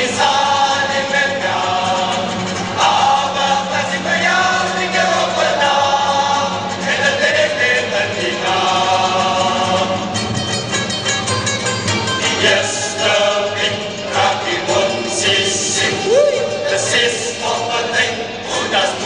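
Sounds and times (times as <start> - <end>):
lead singer: 0.0 - 10.2, 12.3 - 19.0
male choir singing: 0.0 - 10.2, 12.2 - 19.0
string band accompaniment: 0.0 - 19.0.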